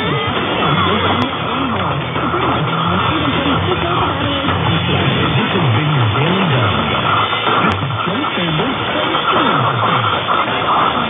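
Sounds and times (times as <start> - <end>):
muffled radio music: 0.0 - 11.0
radio noise: 0.0 - 11.0.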